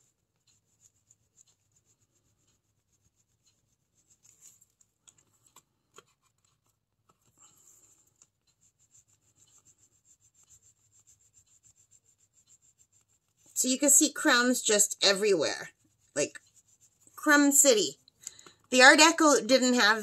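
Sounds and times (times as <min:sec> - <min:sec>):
pastel scratching on paper: 0:00.0 - 0:18.1.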